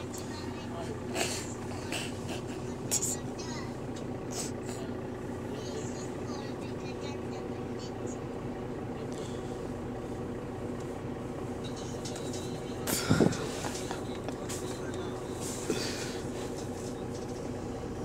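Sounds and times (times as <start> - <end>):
bus drivetrain hum: 0.0 - 18.0
faint passenger chatter: 0.0 - 18.0.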